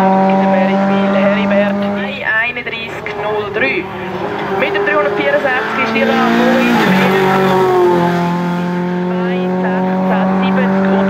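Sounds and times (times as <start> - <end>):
race car engine passing by: 0.0 - 11.0.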